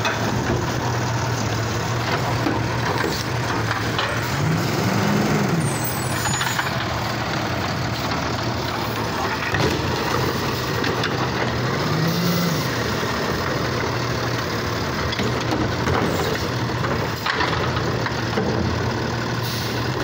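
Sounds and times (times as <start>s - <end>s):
engine revving: 0.0s - 18.5s
diesel engine idling: 0.0s - 20.0s.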